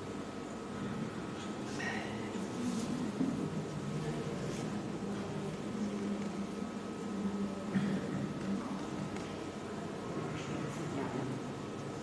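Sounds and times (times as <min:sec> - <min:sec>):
room noise hum and hiss: 0:00.0 - 0:12.0.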